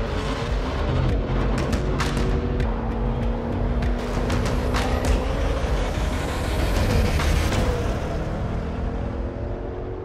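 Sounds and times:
background music with sharp hits: 0.0 - 9.0
car engine running: 0.0 - 10.0.

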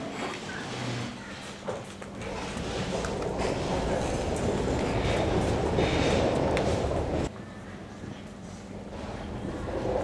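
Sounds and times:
steady rumbling noise: 2.0 - 10.0.

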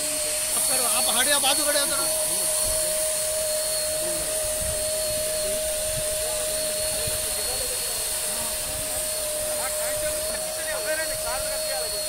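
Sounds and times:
spray hissing: 0.0 - 12.0
sprayer motor hum: 0.0 - 12.0.

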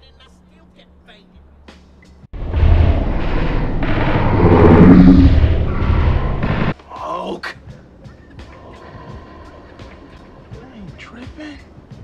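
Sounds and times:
loud blast with low rumble: 2.4 - 6.8
pitched tone: 4.2 - 5.7.

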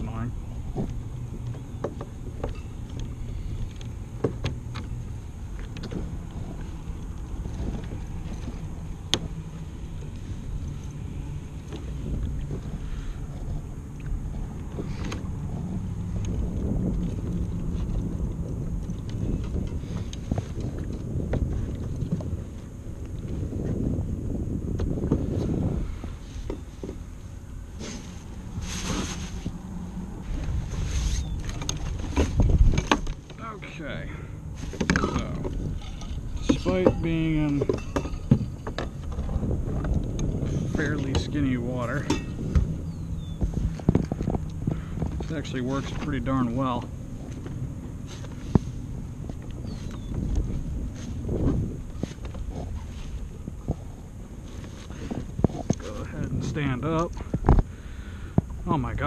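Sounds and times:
water lapping at kayak hull: 0.0 - 59.0
wind on microphone: 0.0 - 59.0.

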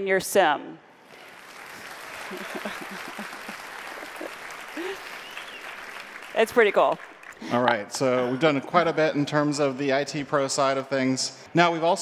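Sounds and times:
audience applause: 1.1 - 7.8.

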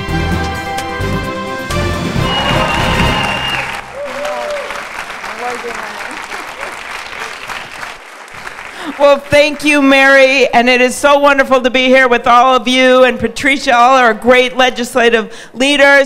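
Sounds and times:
music: 0.0 - 4.0
audience applauding: 2.1 - 9.9
voices over clapping: 2.4 - 9.7.

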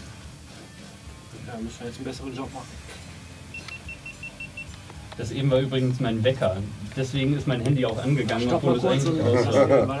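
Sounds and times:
phone alarm beeping: 3.5 - 4.7.

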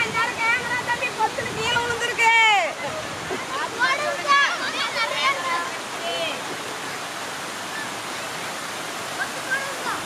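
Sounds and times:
people talking and calling out: 0.0 - 10.0
water rushing over a weir: 0.0 - 10.0.

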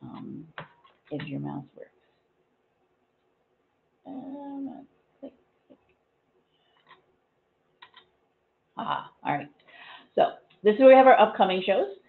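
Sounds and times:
woman speaking hesitantly: 4.1 - 4.8.

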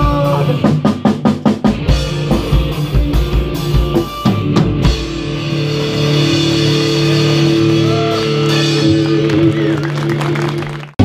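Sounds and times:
drum kit: 0.0 - 11.0
electric guitar sustained notes: 1.9 - 10.9.

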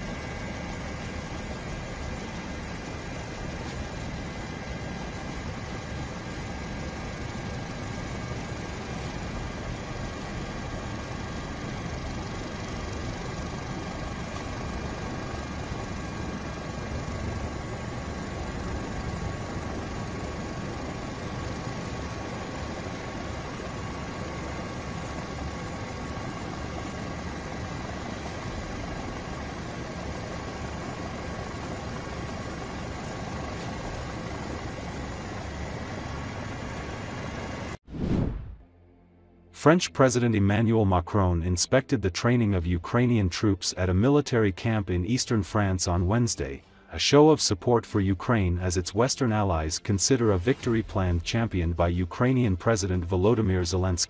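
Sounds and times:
aircraft engine drone: 0.0 - 54.0.

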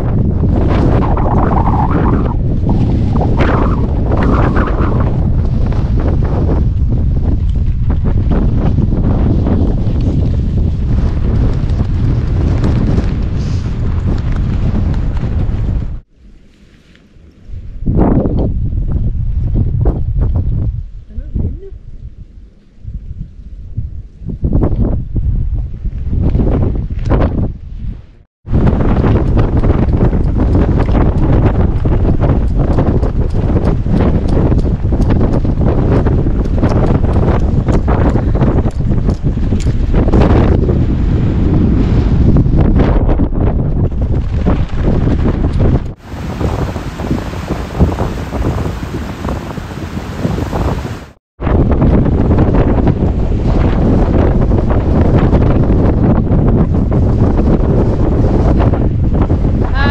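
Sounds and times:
gusty wind buffeting microphone: 0.0 - 59.9.

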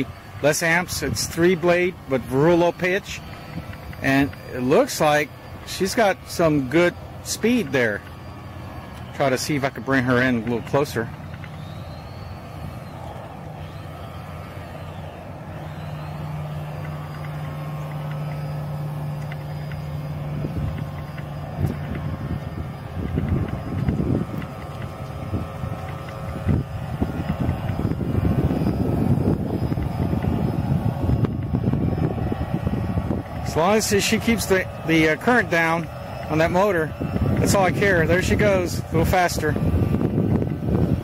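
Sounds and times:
electric motor humming: 0.0 - 41.0.

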